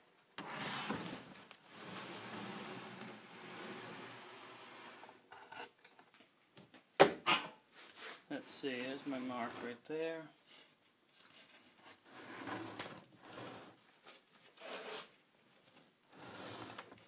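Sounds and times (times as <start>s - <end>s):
wooden plank scraping on table: 0.4s - 5.7s, 12.0s - 13.8s, 16.1s - 17.0s.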